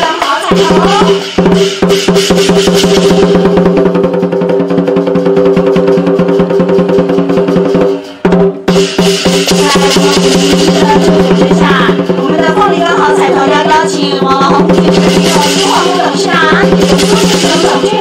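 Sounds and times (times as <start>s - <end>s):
drum and cymbals beating fast: 0.0s - 18.0s.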